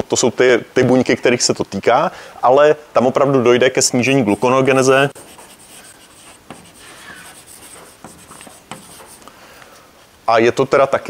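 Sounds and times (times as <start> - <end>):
chalk scratching on blackboard: 4.1 - 9.3
chalk tapping on blackboard: 4.3 - 9.3.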